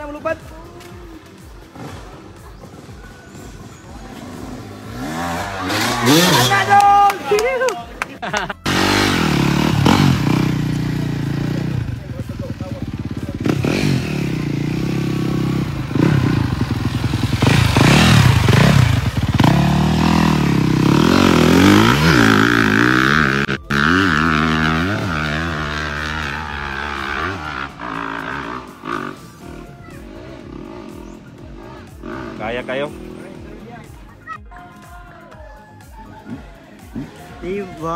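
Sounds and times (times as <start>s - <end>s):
dirt bike engine revving: 1.6s - 7.4s, 8.6s - 33.9s.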